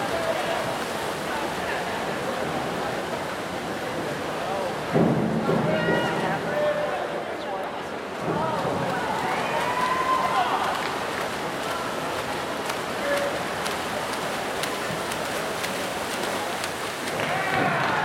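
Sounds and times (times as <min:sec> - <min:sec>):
swimmers splashing: 0:00.0 - 0:18.0
spectators shouting and cheering: 0:08.2 - 0:11.1, 0:17.1 - 0:18.0.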